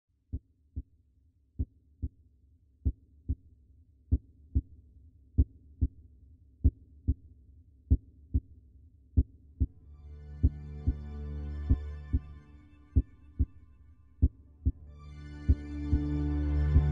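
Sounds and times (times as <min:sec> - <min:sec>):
low drone: 0:09.9 - 0:13.8, 0:14.8 - 0:16.9
slow heartbeat: 0:10.4 - 0:13.6, 0:14.2 - 0:16.9.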